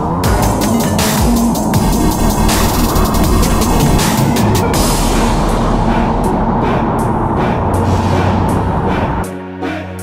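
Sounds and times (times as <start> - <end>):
background music: 0.0 - 10.0
sharp hits: 0.3 - 9.3.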